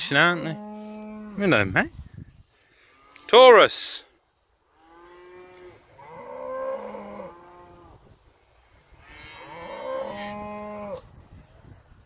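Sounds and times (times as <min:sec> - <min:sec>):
cattle mooing: 0:04.8 - 0:07.9, 0:09.0 - 0:11.0.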